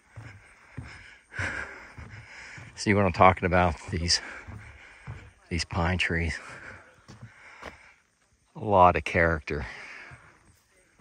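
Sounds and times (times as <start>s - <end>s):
person breathing: 0.0s - 2.8s, 4.2s - 5.4s, 6.4s - 8.2s
footsteps on wooden boardwalk: 0.0s - 11.0s.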